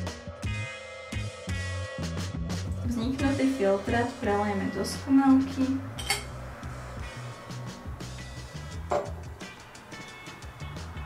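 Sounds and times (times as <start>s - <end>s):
background music: 0.0s - 11.0s
glass clinks: 6.0s - 6.3s.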